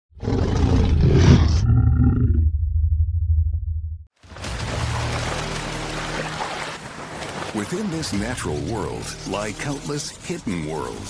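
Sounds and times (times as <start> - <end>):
roar-like sound effect: 0.2 - 3.2
deep rumble: 0.9 - 4.1.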